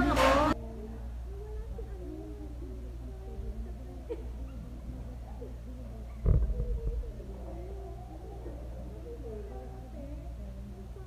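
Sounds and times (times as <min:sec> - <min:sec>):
loud low bump: 0:06.2 - 0:07.1.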